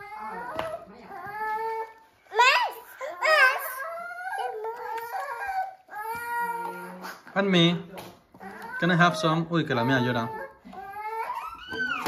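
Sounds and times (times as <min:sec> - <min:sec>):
infant crying: 0:08.4 - 0:12.0.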